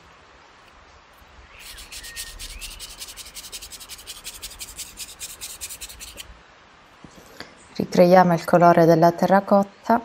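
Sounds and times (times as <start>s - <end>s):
paintbrush scrubbing: 1.6s - 6.3s.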